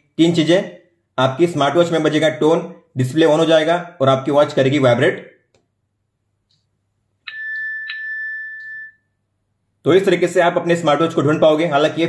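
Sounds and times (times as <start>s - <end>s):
smartwatch alert chime: 7.3s - 9.1s.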